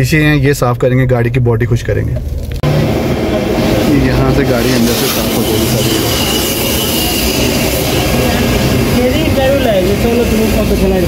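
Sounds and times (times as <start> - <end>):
car wash machinery roaring: 2.2 - 11.0.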